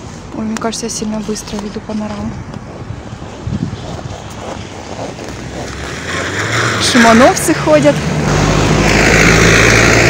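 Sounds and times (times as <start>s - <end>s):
car engine and tyres on road: 0.0s - 10.0s
wind buffeting microphone: 0.0s - 10.0s.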